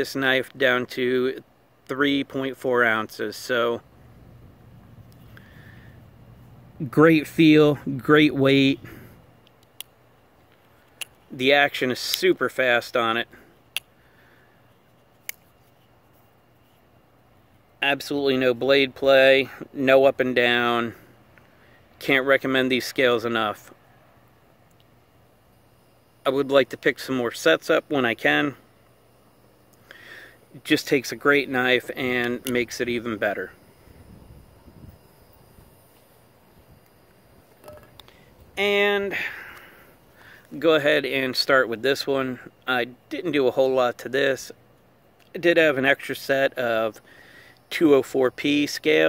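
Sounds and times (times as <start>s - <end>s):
low outdoor rumble: 0.0s - 47.2s.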